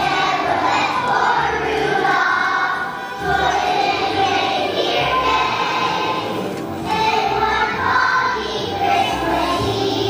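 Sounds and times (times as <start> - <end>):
children's choir singing: 0.0 - 10.0
musical accompaniment with bass line: 0.0 - 10.0.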